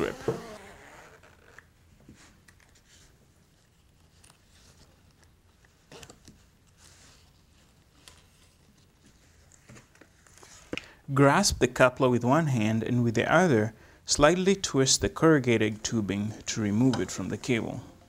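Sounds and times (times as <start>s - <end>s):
soft clicks and rustles of handling: 1.5s - 10.9s.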